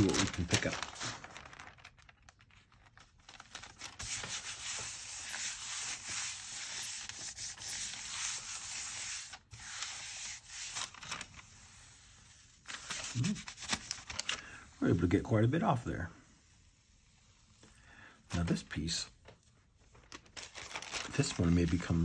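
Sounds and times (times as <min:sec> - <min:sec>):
hand rubbing paper: 0:00.0 - 0:02.1, 0:03.3 - 0:17.7, 0:19.4 - 0:22.0
paper peeled off plate: 0:00.0 - 0:15.8, 0:19.9 - 0:22.0.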